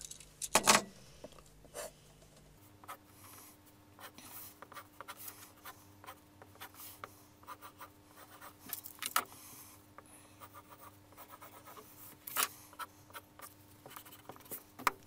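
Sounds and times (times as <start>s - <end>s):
pencil scratching on paper: 2.8s - 8.7s, 10.4s - 14.9s.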